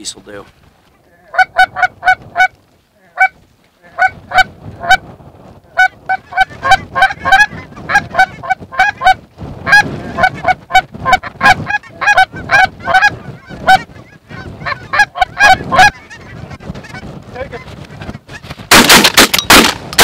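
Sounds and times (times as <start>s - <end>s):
geese honking: 1.2s - 2.5s, 5.8s - 17.0s
wind rumble on microphone: 1.4s - 20.0s.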